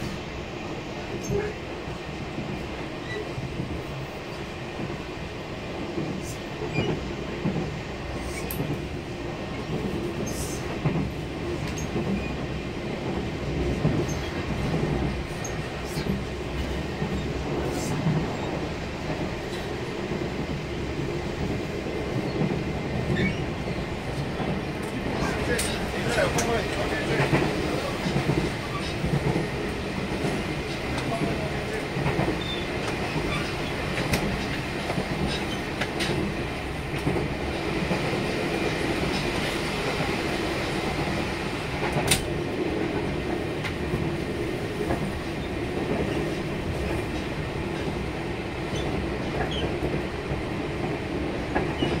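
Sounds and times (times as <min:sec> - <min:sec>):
wheels rumbling on rail: 0:00.0 - 0:52.0.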